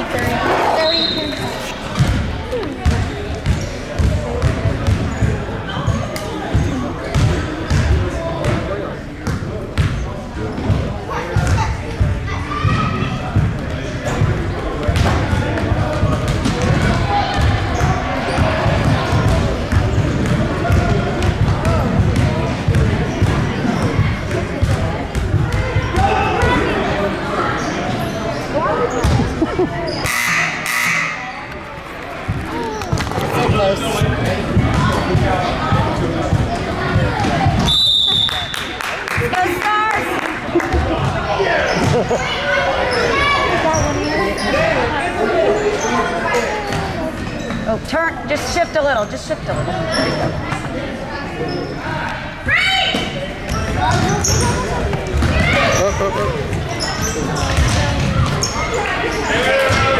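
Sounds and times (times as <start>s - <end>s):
people talking: 0.0s - 59.9s
basketballs bouncing on hardwood: 13.4s - 26.1s.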